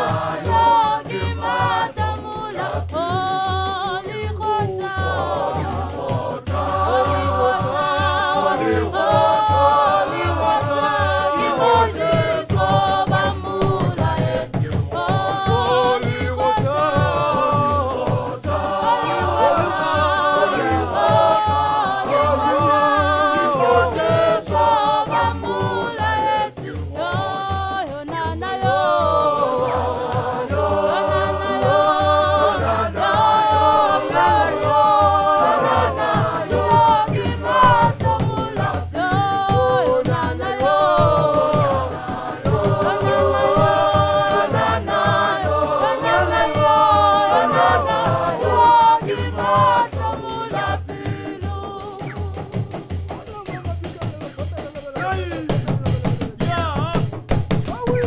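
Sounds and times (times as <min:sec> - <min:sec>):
choir singing in harmony: 0:00.0 - 0:54.0
deep drum beating: 0:00.0 - 0:58.0.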